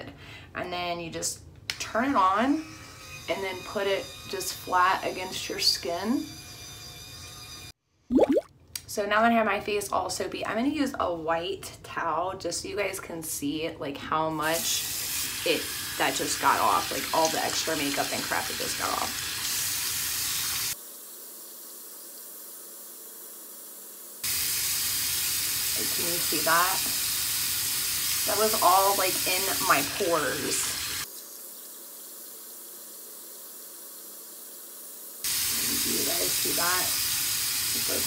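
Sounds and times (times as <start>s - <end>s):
sink tap running water: 14.5s - 20.8s, 24.2s - 31.4s, 35.3s - 38.0s.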